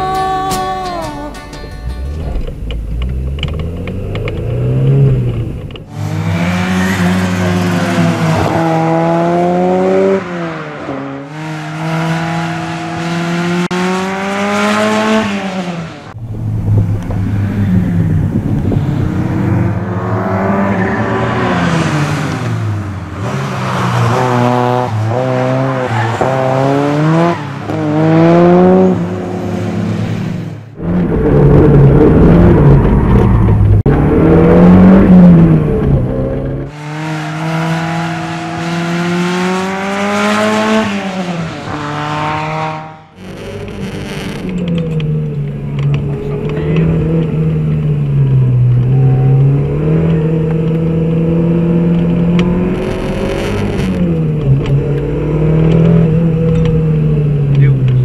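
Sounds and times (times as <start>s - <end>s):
race car engine revving: 1.8s - 58.0s.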